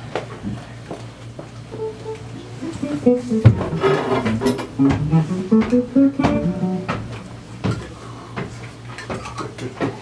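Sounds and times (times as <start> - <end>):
electric guitar plucked notes: 1.7 - 8.0.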